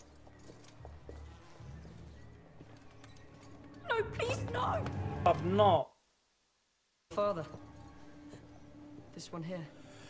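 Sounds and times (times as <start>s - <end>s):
faint low background score: 0.0s - 10.0s.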